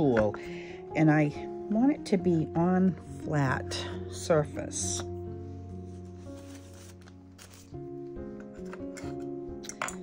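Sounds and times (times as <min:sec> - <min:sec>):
soft instrumental music: 0:00.0 - 0:10.0
paper pages rustling: 0:05.9 - 0:09.0.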